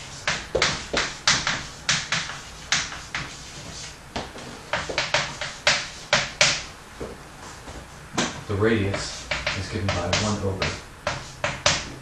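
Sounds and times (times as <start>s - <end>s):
chalk tapping and scraping: 0.0s - 6.6s, 7.7s - 12.0s.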